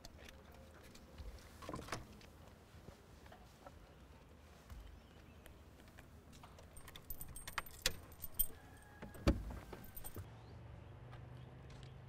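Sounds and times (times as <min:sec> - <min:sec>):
keys jangling: 0:06.4 - 0:10.3.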